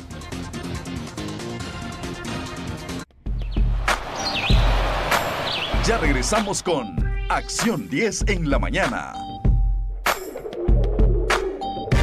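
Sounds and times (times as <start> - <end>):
production music: 0.0 - 12.0
high chirping sweeps: 3.4 - 6.6
whooshing hits: 3.6 - 6.4.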